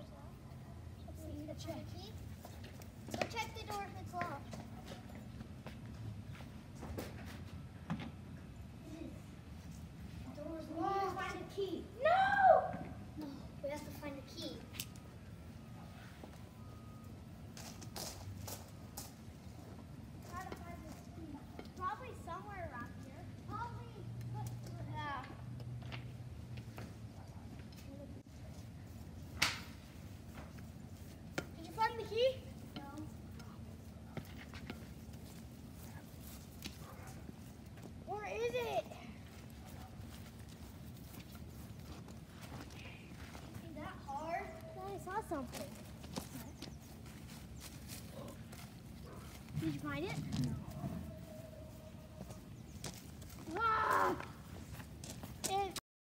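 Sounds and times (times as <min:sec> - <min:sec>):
children calling: 0:53.5 - 0:54.4.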